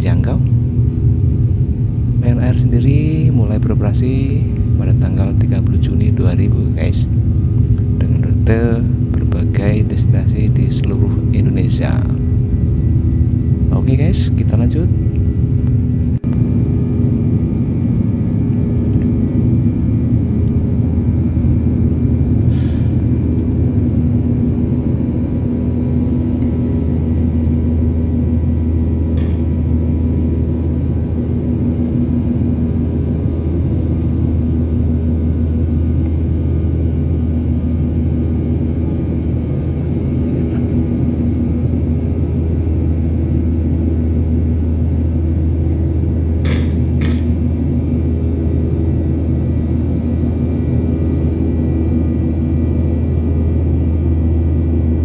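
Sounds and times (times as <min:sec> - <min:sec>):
constant hum tones: 0:00.0 - 0:55.0
jet engine drone: 0:00.0 - 0:55.0.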